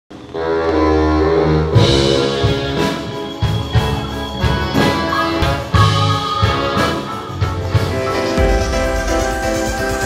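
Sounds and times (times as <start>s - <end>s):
drums: 0.1s - 10.0s
live band playing: 0.1s - 10.0s.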